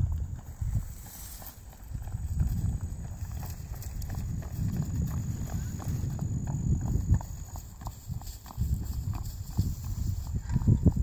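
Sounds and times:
muffled hoofbeats on grass: 0:00.0 - 0:11.0
steady low rumble: 0:00.0 - 0:11.0.

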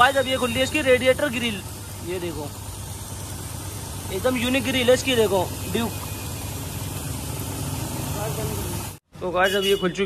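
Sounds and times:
engine idling: 0:00.0 - 0:09.1
workshop noise: 0:00.0 - 0:10.0.

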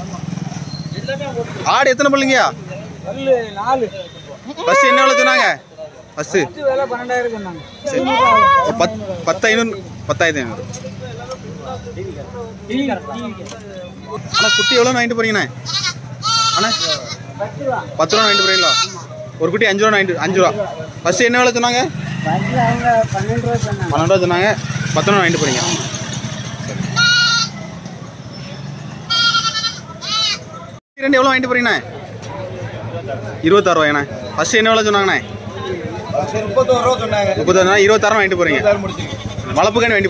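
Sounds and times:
goat bleating: 0:04.5 - 0:05.5, 0:14.3 - 0:15.0, 0:15.6 - 0:17.3, 0:18.1 - 0:19.1, 0:26.9 - 0:27.6, 0:29.1 - 0:30.5, 0:38.7 - 0:39.6.

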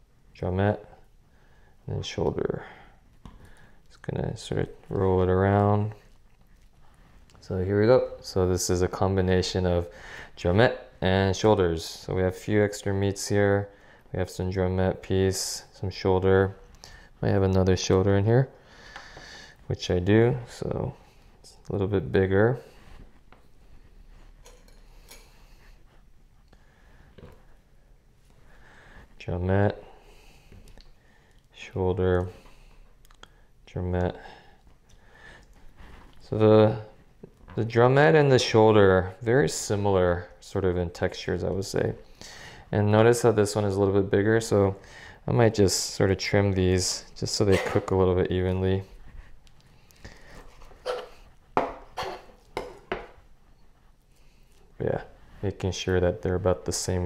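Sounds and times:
soft clicks and rustles: 0:03.1 - 0:07.6, 0:48.4 - 0:51.6.

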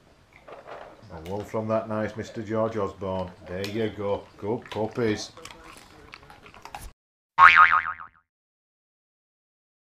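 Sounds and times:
cartoon boing: 0:07.4 - 0:08.2.

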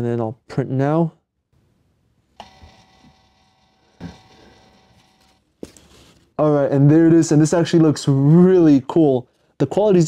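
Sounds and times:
label printer motor whirring: 0:02.4 - 0:05.4.

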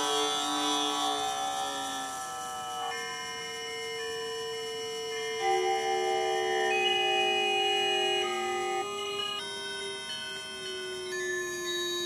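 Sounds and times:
sustained electronic tones: 0:00.0 - 0:11.1.

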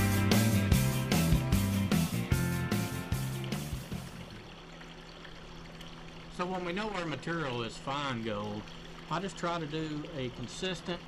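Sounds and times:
background music: 0:00.0 - 0:04.3
water rushing down a sluice: 0:02.0 - 0:11.0.

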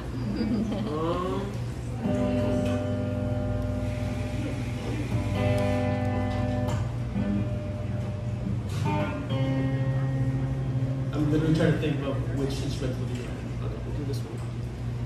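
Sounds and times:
electric guitar ringing chords: 0:01.9 - 0:12.3.

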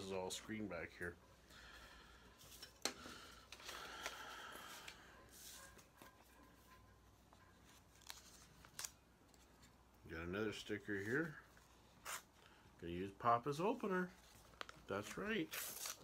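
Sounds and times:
paper rustling: 0:07.6 - 0:09.8.

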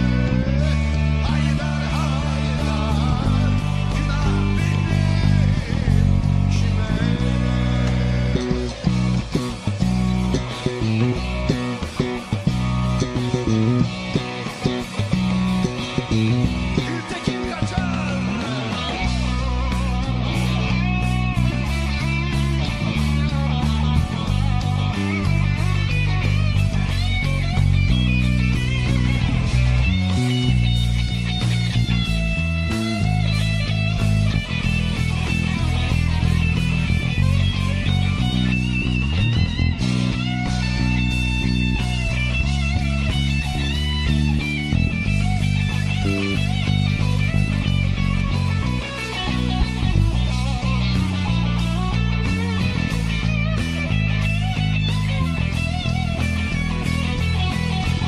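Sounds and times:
electric bass guitar line: 0:00.0 - 0:58.0
rock backing track: 0:00.0 - 0:58.0.

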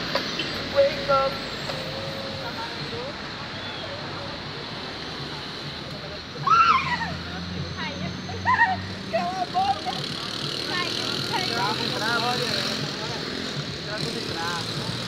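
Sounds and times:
street traffic: 0:00.0 - 0:15.0
scattered voices: 0:00.7 - 0:15.0.

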